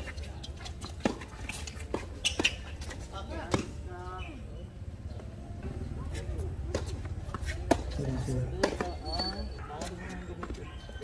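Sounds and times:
voices chatting: 0:00.0 - 0:11.0.

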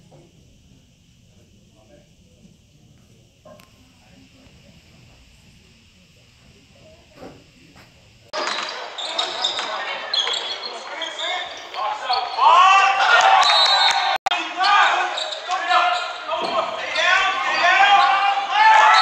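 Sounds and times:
basketball bouncing: 0:08.4 - 0:10.5
sneakers squeaking on hardwood: 0:08.4 - 0:12.6.

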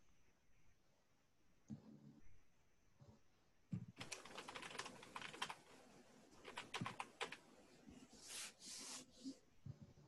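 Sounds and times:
faint keyboard typing: 0:03.8 - 0:05.8, 0:06.4 - 0:07.5.

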